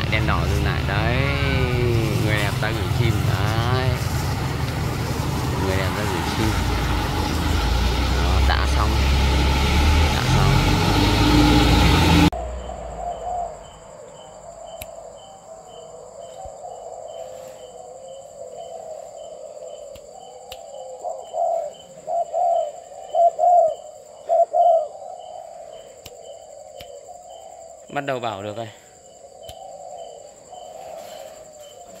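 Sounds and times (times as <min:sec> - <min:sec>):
doves cooing: 0:00.0 - 0:11.6, 0:12.2 - 0:32.0
road traffic on wet street: 0:00.0 - 0:12.6
minibus engine: 0:00.0 - 0:14.0.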